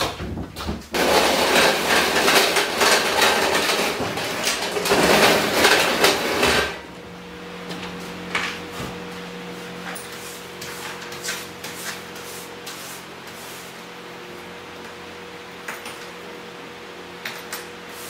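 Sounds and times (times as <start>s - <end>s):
hard objects clattering and knocking: 0.0s - 6.8s
steady hum: 4.2s - 18.0s.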